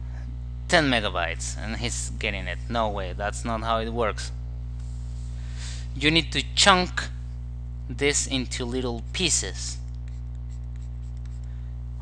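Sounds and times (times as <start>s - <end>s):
low electrical hum: 0.0s - 12.0s
stylus scratching on drawing tablet: 8.9s - 9.4s, 10.0s - 11.4s.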